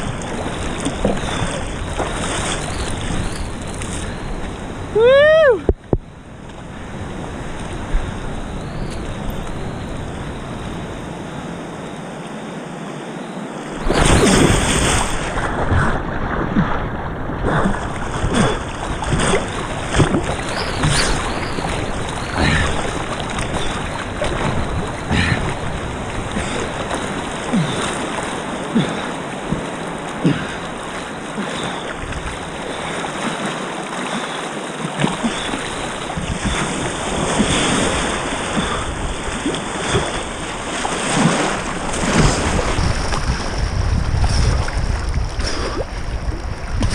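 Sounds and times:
water splashing near microphone: 0.0s - 12.6s, 13.6s - 46.9s
whitewater rapids rushing: 17.4s - 43.2s.

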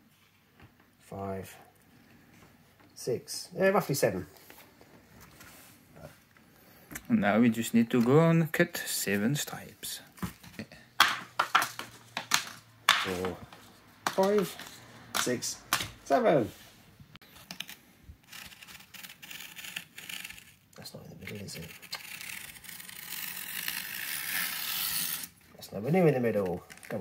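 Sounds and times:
knife slicing through tape: 21.4s - 25.4s.

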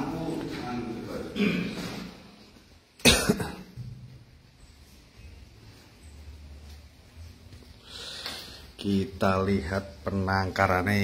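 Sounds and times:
person coughing: 1.3s - 2.0s, 3.0s - 3.8s.

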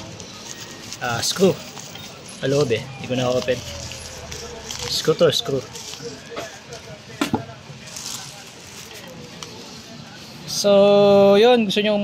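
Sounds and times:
paper envelope crinkling: 0.0s - 7.0s, 7.7s - 10.0s.

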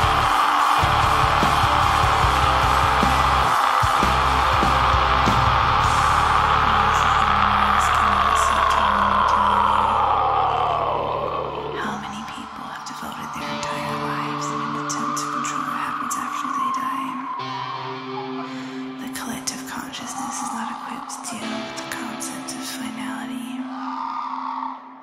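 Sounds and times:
drums: 0.0s - 8.6s
harsh held scream: 0.0s - 18.5s, 20.0s - 21.6s, 23.6s - 25.0s
distorted guitars: 0.0s - 23.0s.

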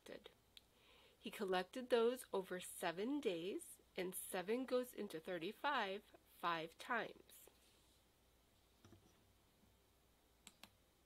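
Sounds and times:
computer mouse clicks: 10.4s - 10.8s.

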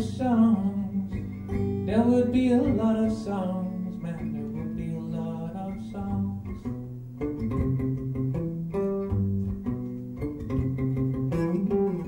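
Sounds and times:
plucked guitar: 0.0s - 12.0s.

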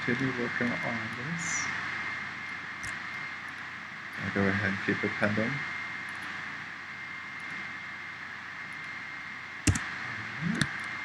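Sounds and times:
low murmur: 0.0s - 11.0s
thin high whine: 0.0s - 11.0s.

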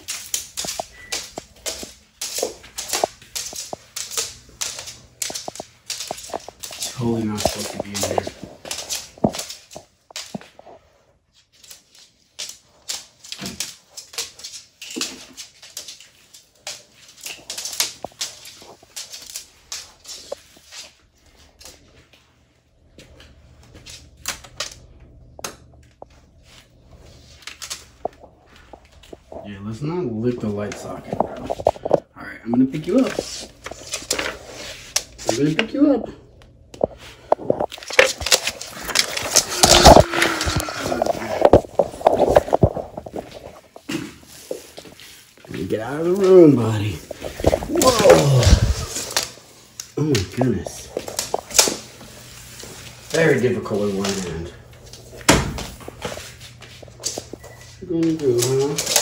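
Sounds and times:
lizard claws tapping on floor: 0.0s - 10.6s.

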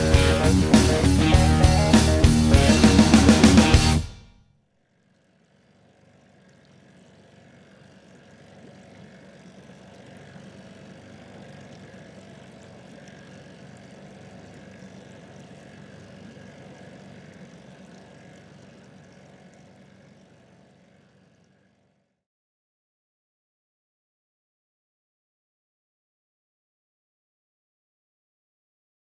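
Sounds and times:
distant engine drone: 0.0s - 22.0s.

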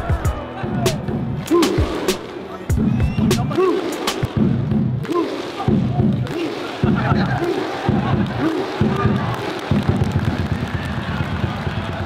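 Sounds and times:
football crowd chanting: 3.4s - 10.1s.

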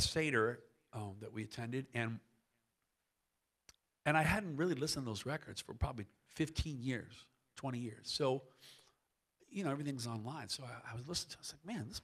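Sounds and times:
man speaking: 0.0s - 2.3s, 4.1s - 8.5s, 9.5s - 12.0s.

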